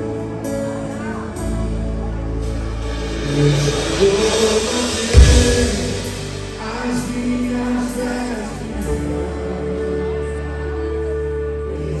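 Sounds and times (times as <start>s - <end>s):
live band playing: 0.0s - 11.9s
drum fill with cymbals: 2.4s - 8.2s.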